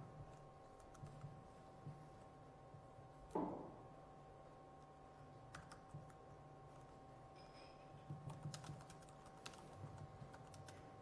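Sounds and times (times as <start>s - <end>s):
faint steady whine: 0.0s - 11.0s
typing on laptop keyboard: 0.2s - 1.5s, 5.5s - 6.3s, 8.0s - 11.0s.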